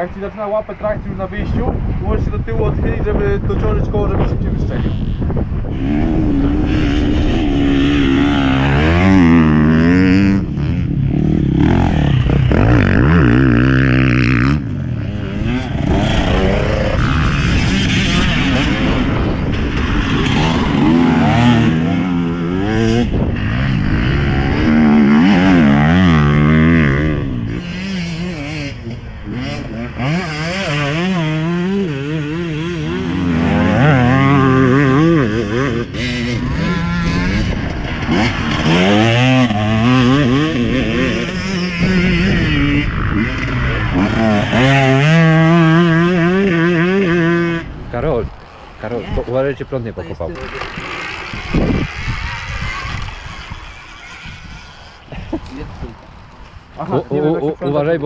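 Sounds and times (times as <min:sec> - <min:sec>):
motorcycle engine revving: 0:04.6 - 0:56.3.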